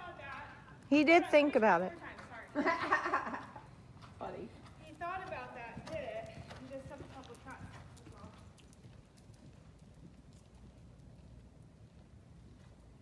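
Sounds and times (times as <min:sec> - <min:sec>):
horse hoofbeats on sand: 0:03.4 - 0:13.0.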